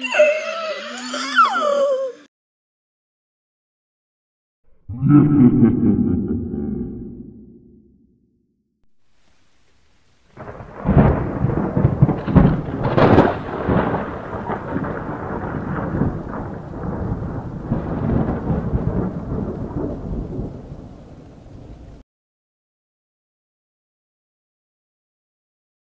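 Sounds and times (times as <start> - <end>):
rain-like hiss: 9.0 - 22.0
crackling rumble of thunder: 9.1 - 22.0.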